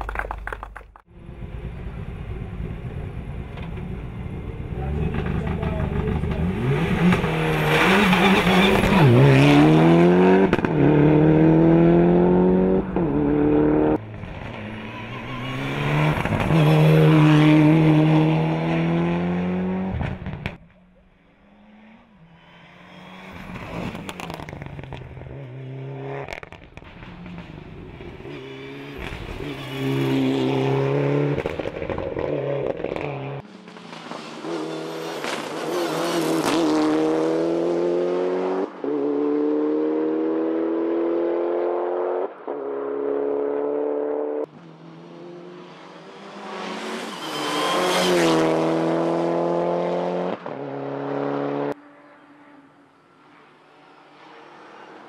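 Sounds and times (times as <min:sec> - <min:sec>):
rally car engine at full throttle: 0:01.1 - 0:55.0.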